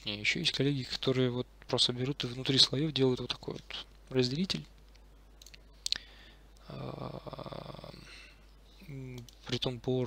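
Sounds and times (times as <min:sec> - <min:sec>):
man humming: 0:06.6 - 0:08.2.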